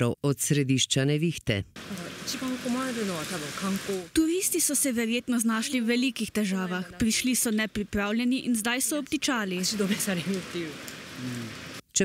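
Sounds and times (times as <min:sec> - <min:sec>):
steady rain hiss: 0:01.8 - 0:11.8.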